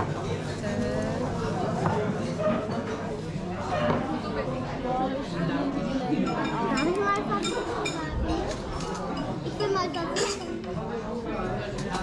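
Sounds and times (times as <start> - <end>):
indistinct restaurant chatter: 0.0 - 12.0.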